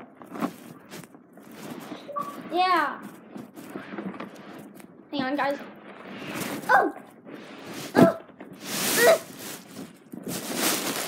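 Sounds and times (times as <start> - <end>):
camera jostling rustle: 0.1 - 11.0.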